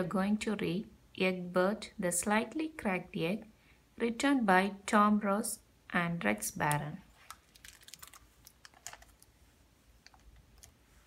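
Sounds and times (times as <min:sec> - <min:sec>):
book pages clicking and ticking: 0:07.2 - 0:09.3.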